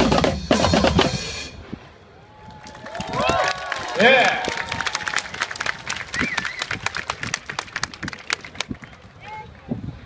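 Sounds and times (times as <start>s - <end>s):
audience applause: 2.6s - 8.9s.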